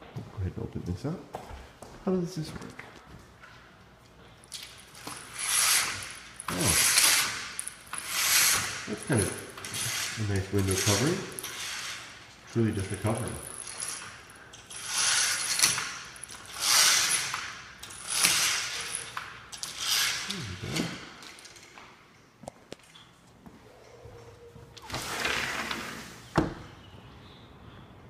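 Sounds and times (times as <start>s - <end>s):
metal bead chain rattling: 4.4s - 20.4s.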